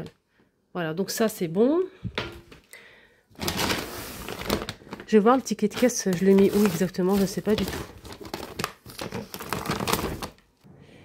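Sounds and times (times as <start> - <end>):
plastic bag crinkling: 3.3 - 10.4.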